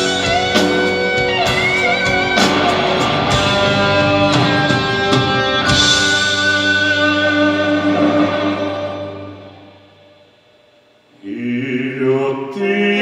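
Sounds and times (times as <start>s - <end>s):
band playing chords: 0.0s - 10.9s.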